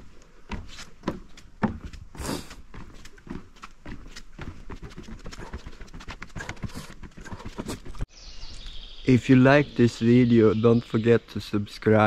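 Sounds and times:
footsteps on dry forest ground: 0.0 - 9.0.

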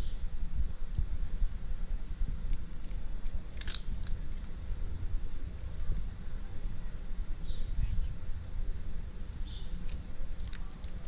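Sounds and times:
steady low rumble: 0.0 - 11.0
cat crunching dry kibble: 2.8 - 4.6, 10.3 - 11.0.

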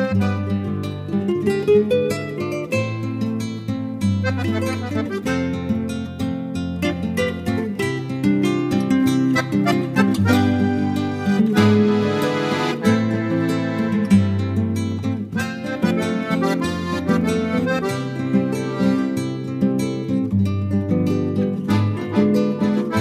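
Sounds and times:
guitar plucked notes: 0.0 - 23.0.

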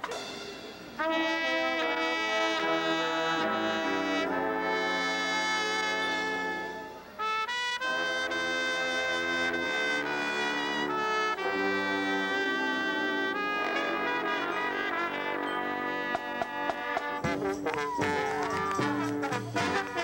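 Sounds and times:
brass ensemble playing chords: 0.0 - 20.0.

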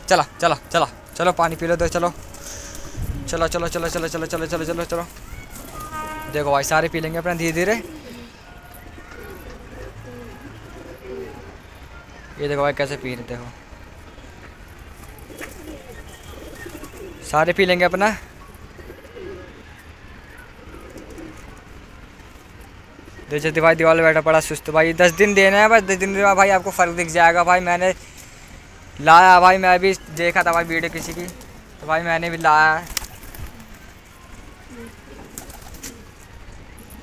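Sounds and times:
pigeons cooing softly: 2.3 - 11.8, 15.0 - 17.4, 18.2 - 23.5, 32.9 - 37.0.

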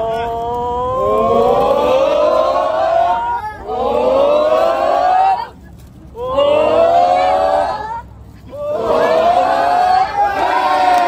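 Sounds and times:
children cheering: 0.0 - 11.0.

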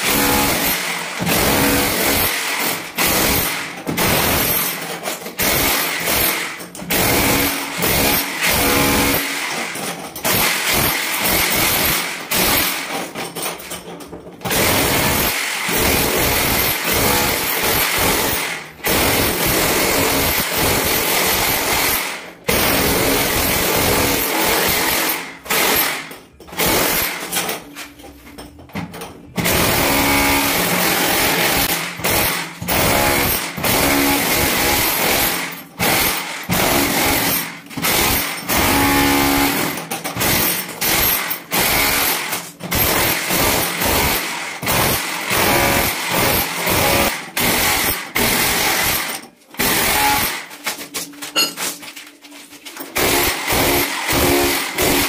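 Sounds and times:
demolition hammer chipping tiles: 0.0 - 51.8, 52.8 - 55.0.

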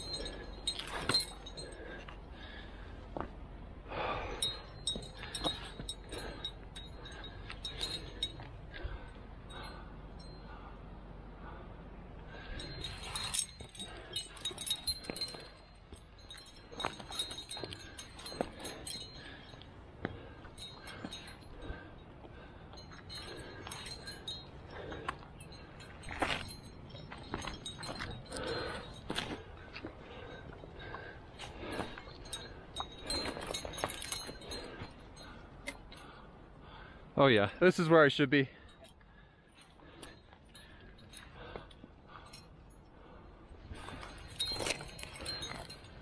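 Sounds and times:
climbing gear clinking: 0.0 - 46.0.

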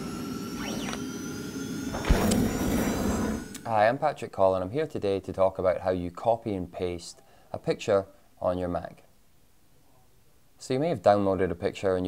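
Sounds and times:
synthetic drone: 0.0 - 3.6
deep impact hit: 1.9 - 3.5.

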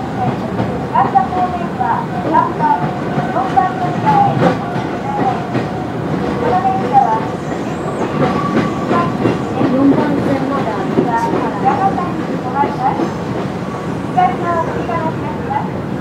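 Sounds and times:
train running rumble: 0.0 - 16.0.

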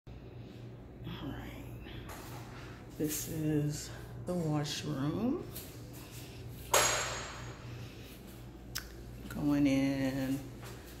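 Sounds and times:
steady low hum: 0.1 - 11.0.

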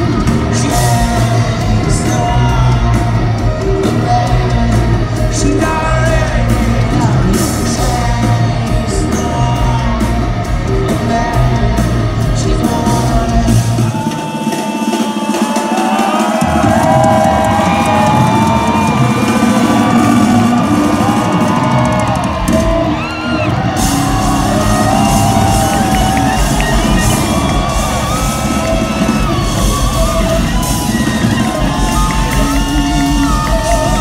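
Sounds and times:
distorted guitars: 0.0 - 14.4, 16.0 - 34.0
drums: 0.0 - 34.0
rock band playing live: 0.0 - 34.0.

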